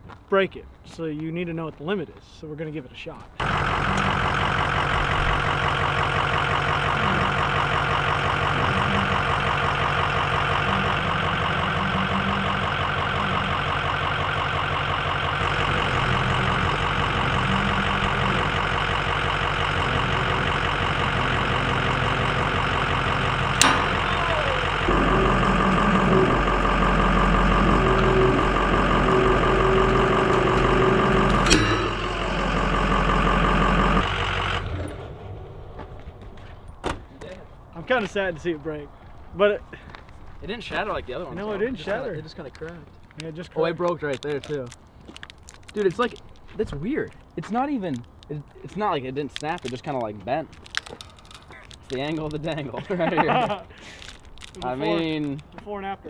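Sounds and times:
pickup truck engine running: 3.4s - 36.8s.

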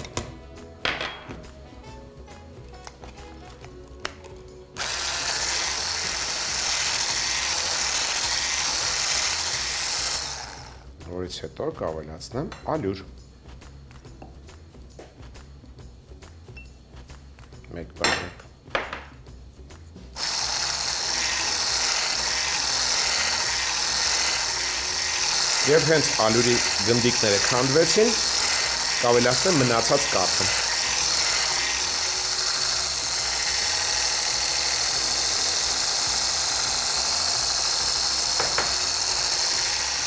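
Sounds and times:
hand blender motor whirring: 4.8s - 10.9s, 20.2s - 40.0s.

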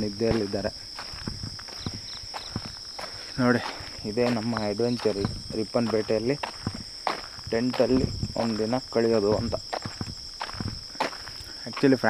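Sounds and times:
crickets chirring: 0.0s - 12.0s
footsteps on ground: 0.0s - 12.0s.

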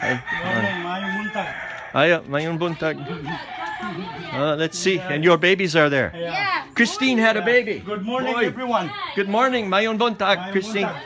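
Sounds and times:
rooster crowing: 0.0s - 2.0s.

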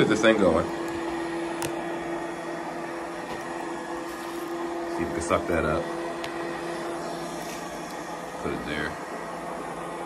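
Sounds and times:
robotic vacuum motor hum: 0.0s - 10.0s.

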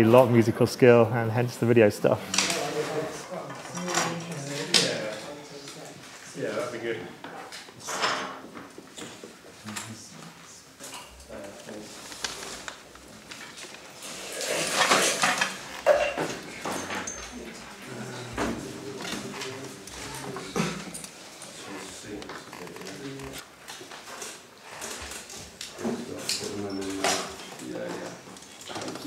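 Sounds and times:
scraping and rustling: 11.3s - 29.0s
tools and parts clinking: 14.6s - 17.4s
faint voices murmuring: 17.2s - 23.4s.

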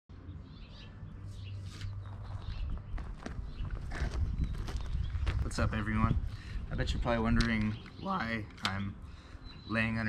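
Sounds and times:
birds chirping: 0.1s - 10.0s
gravel crunching: 1.4s - 8.0s
steady low rumble: 1.8s - 10.0s.

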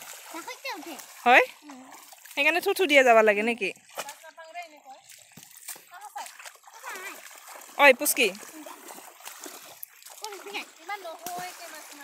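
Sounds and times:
feet splashing in shallow water: 0.0s - 12.0s.

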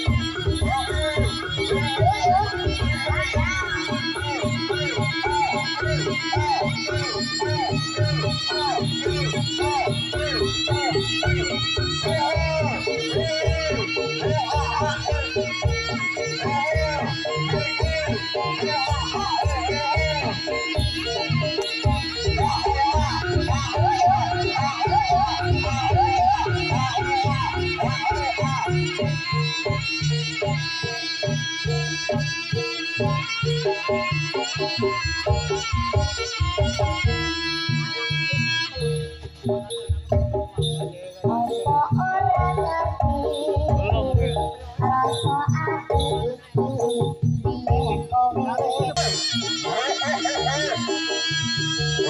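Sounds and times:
reedy wind instrument melody: 0.0s - 52.0s
ringing metallophone notes: 0.0s - 52.0s
steady drum beat: 41.3s - 46.4s.

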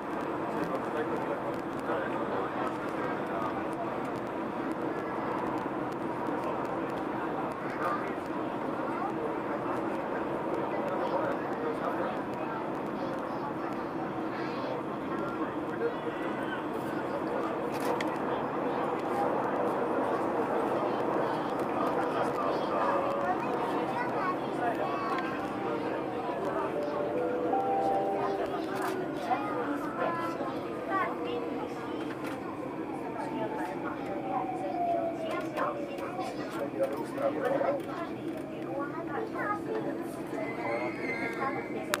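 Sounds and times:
indistinct passenger chatter: 0.0s - 42.0s
train running in tunnel: 0.0s - 42.0s
high thin train squeal: 40.3s - 41.9s.

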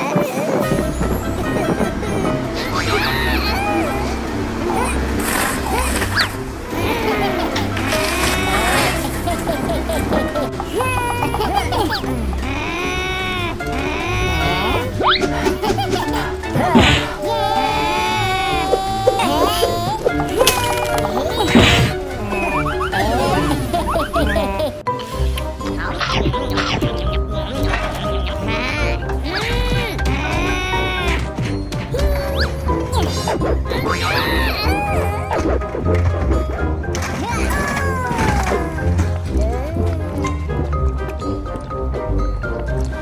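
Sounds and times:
bus body crunching and crashing: 0.1s - 10.7s, 20.0s - 24.2s, 35.5s - 39.4s
cartoon character vocalizations: 31.9s - 35.4s.

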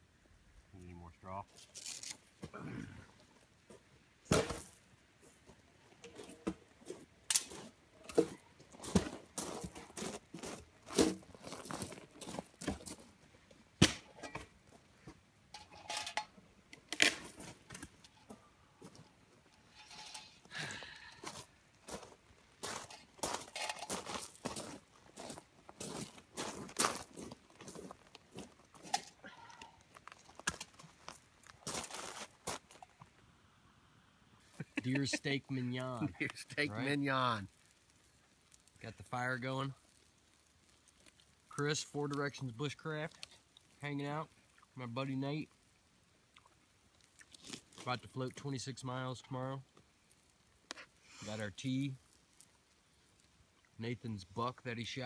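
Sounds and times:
footsteps on gravel: 6.8s - 13.2s, 21.0s - 29.2s, 29.8s - 32.8s
firewood snapping: 13.8s - 14.5s, 37.5s - 38.8s, 39.8s - 42.2s.

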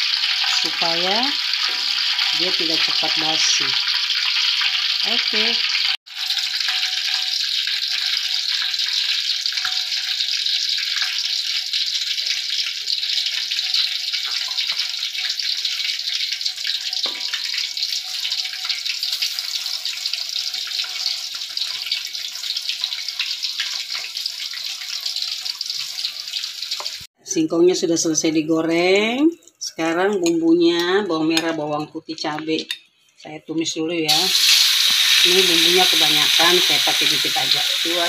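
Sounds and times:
food deep-frying in oil: 0.0s - 27.2s, 34.0s - 38.0s.

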